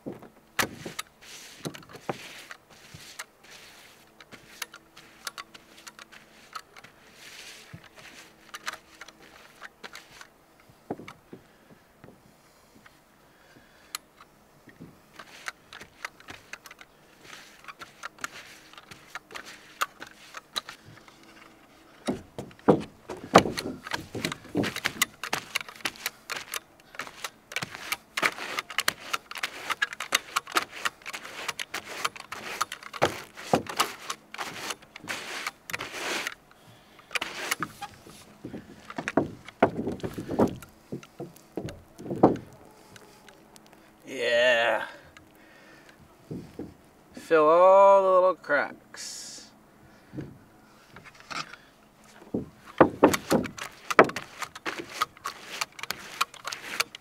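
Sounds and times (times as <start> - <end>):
push broom scraping on roof: 0.6 - 10.3, 15.0 - 43.7, 50.8 - 57.0.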